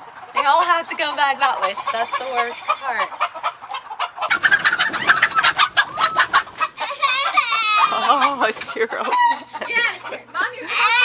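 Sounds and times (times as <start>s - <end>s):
chickens clucking and squawking: 0.0s - 11.0s.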